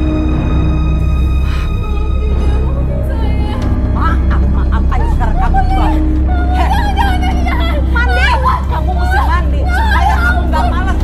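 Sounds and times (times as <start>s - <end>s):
young woman wailing and sobbing: 4.8s - 11.0s
woman shouting: 5.6s - 11.0s.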